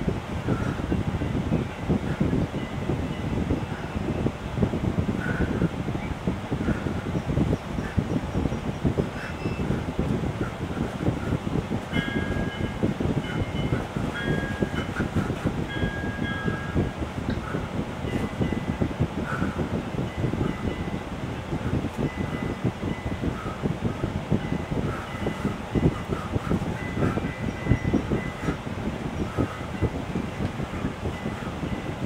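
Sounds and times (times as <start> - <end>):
low rumbling noise: 0.0 - 32.0.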